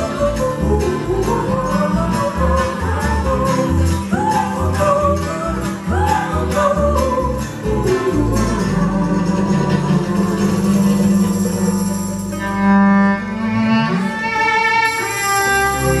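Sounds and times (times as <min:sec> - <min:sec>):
woman singing: 0:00.0 - 0:11.9
string band playing: 0:00.0 - 0:16.0.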